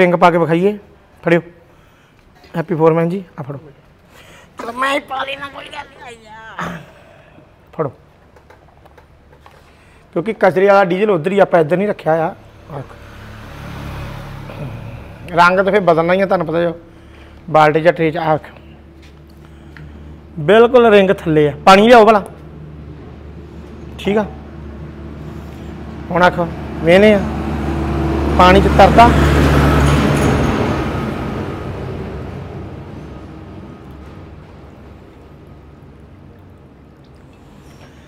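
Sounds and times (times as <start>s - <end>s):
low engine-like hum: 13.8s - 38.0s.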